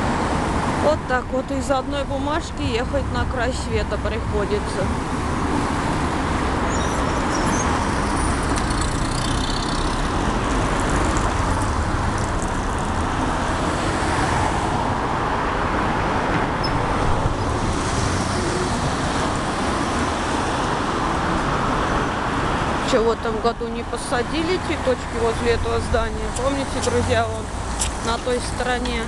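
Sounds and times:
cars driving past: 0:00.0 - 0:29.0.

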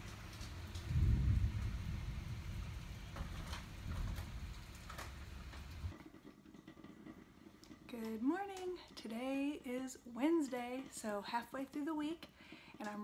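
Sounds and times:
heavy rain pouring: 0:00.0 - 0:05.9
low thunder rumble: 0:00.0 - 0:05.9.

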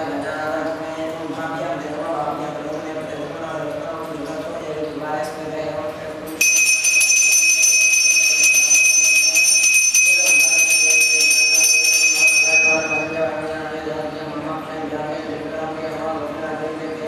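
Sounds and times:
hand bell ringing rapidly: 0:06.4 - 0:13.4.

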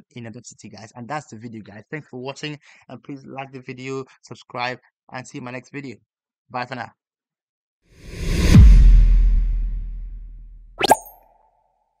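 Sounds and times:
deep boom: 0:08.1 - 0:10.5
sharp rising pop: 0:08.1 - 0:11.2.

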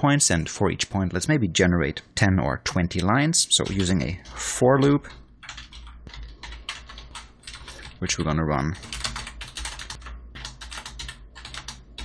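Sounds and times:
computer keyboard typing: 0:03.6 - 0:12.0.

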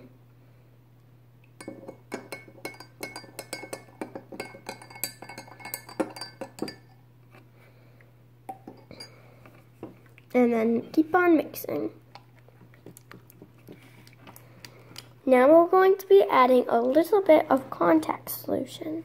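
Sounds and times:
utensils clinking against glass bowl: 0:01.6 - 0:07.0, 0:08.5 - 0:09.2.

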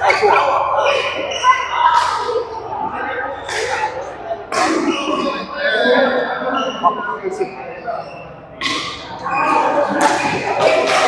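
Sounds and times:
indistinct voices talking: 0:00.0 - 0:11.0.

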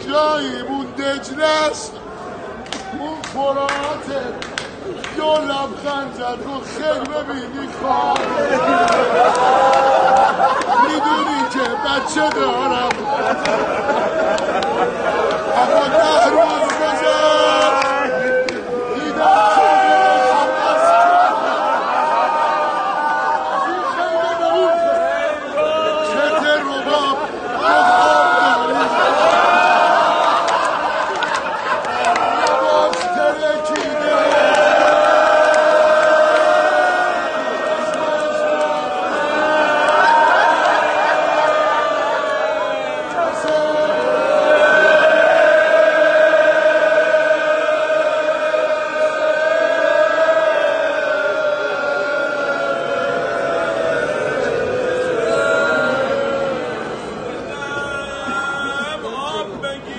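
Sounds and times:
crowd of men chanting: 0:05.2 - 0:59.9
man chanting a lament: 0:15.5 - 0:21.3, 0:32.4 - 0:34.4, 0:57.4 - 0:59.9.

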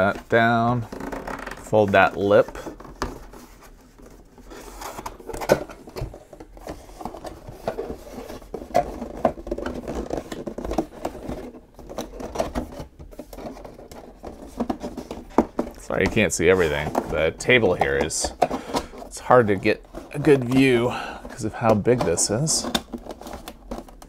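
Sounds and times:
cardboard being folded and handled: 0:00.0 - 0:24.0.

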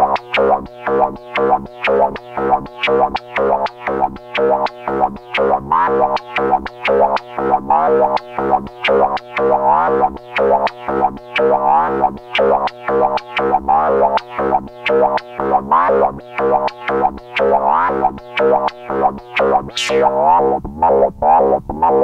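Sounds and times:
synthesizer loop of snappy notes: 0:00.0 - 0:22.0.

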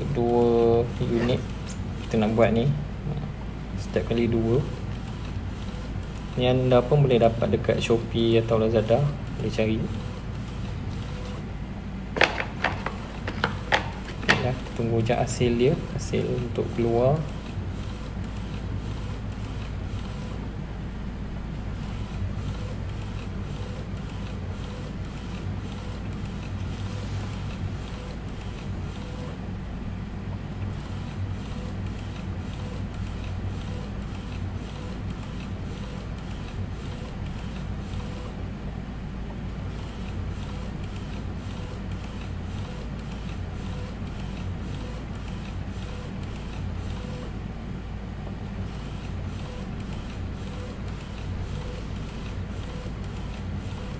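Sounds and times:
printer running hum: 0:00.0 - 0:53.9
printer carriage shuttling: 0:12.1 - 0:15.0.

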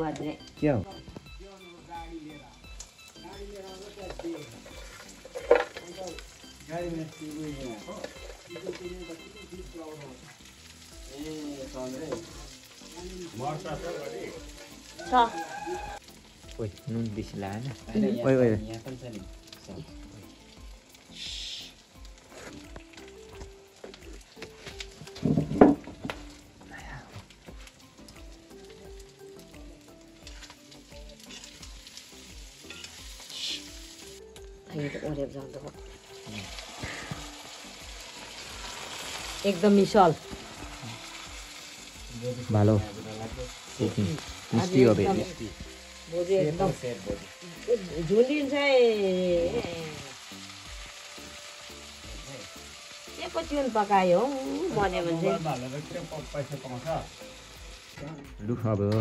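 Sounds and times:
greens sizzling in a wok: 0:00.0 - 0:59.0.

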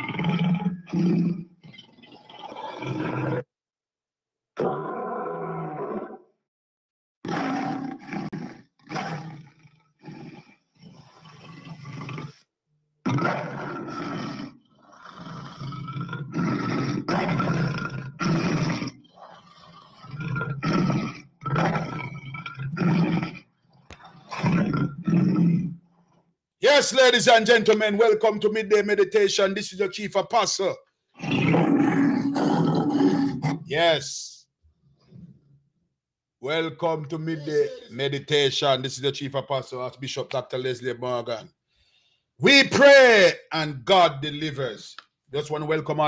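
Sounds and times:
lion roaring: 0:00.0 - 0:03.5, 0:04.6 - 0:06.3, 0:07.3 - 0:12.4, 0:13.0 - 0:25.8, 0:31.2 - 0:33.8, 0:37.1 - 0:38.0.

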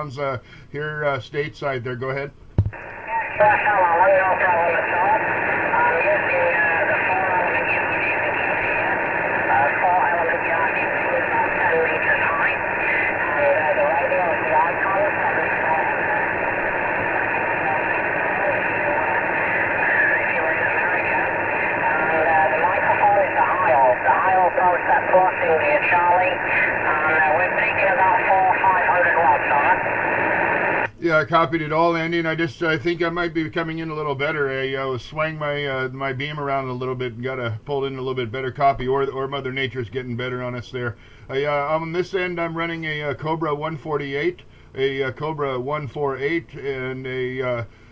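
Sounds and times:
radio band noise hiss: 0:00.0 - 0:47.9
distant voice over cb radio: 0:02.8 - 0:30.9.

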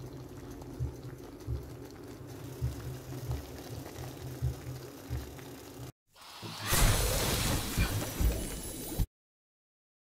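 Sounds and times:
soup simmering bubbling: 0:00.0 - 0:05.9.

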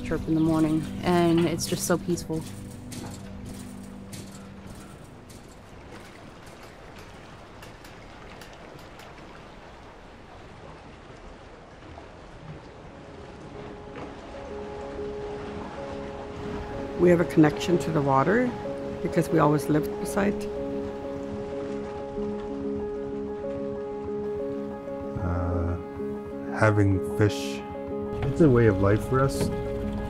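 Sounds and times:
soft music with held notes: 0:00.0 - 0:08.9, 0:12.8 - 0:30.0
water washing: 0:00.0 - 0:30.0.

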